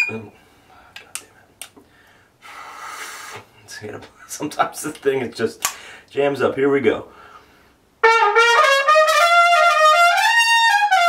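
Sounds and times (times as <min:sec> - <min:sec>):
breathy air through recorder: 0:00.3 - 0:03.5, 0:05.7 - 0:06.1, 0:07.1 - 0:07.8.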